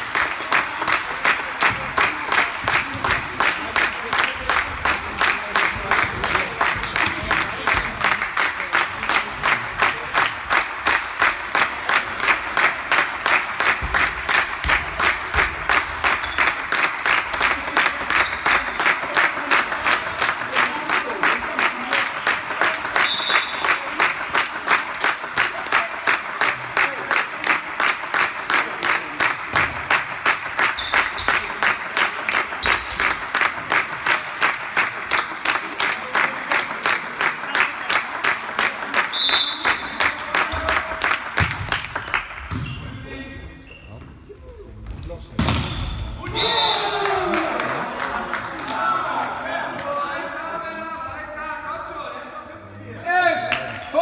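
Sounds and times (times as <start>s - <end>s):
spectators clapping in rhythm: 0.0s - 42.5s, 46.7s - 50.2s, 53.4s - 54.0s.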